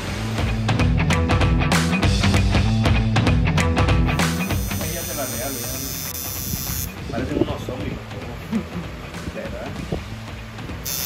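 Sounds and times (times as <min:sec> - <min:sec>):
tattoo machine buzzing: 0:04.2 - 0:07.0.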